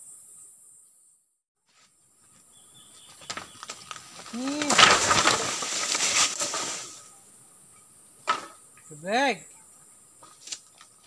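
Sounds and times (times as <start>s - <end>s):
high insect drone: 0.0s - 11.0s
wooden poles clattering onto leaves: 3.0s - 7.1s, 8.2s - 8.9s, 10.2s - 11.0s.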